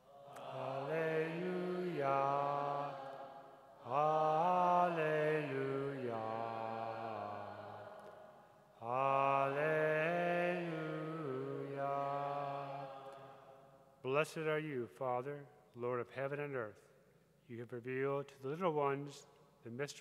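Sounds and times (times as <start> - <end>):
man singing a chant: 0.3 - 3.0, 3.8 - 7.9, 8.8 - 13.1.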